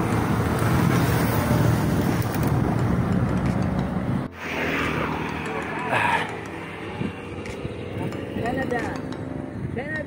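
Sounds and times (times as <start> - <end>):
motorcycle passing: 0.0 - 10.0
road noise: 0.0 - 10.0
wind: 0.0 - 10.0.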